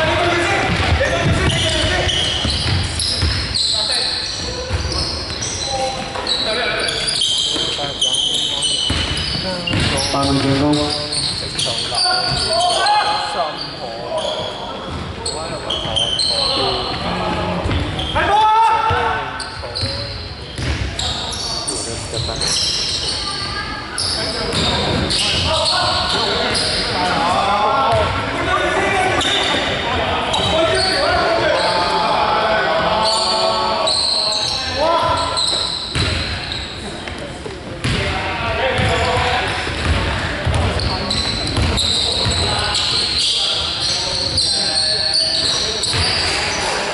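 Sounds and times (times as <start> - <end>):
basketball bouncing on wooden court: 0.6 - 3.5, 8.8 - 10.8, 35.9 - 36.3, 38.8 - 42.6.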